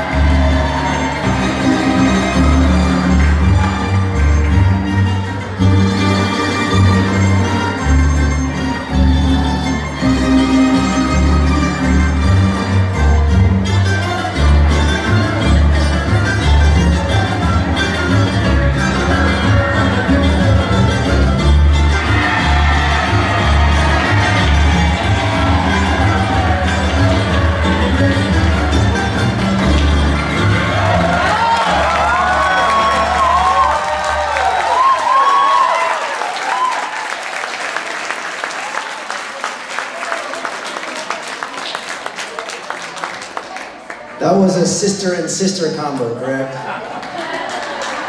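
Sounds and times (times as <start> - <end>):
audience applause: 0.0 - 5.6, 21.8 - 44.4, 46.6 - 48.0.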